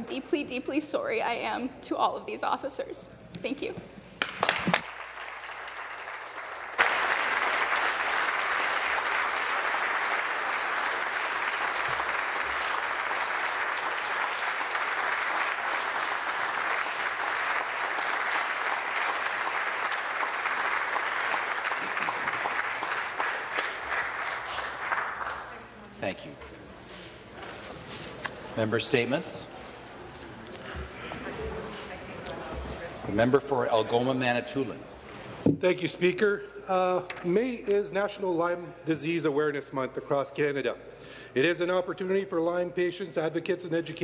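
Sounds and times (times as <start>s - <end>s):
legislators applauding: 4.2s - 26.4s.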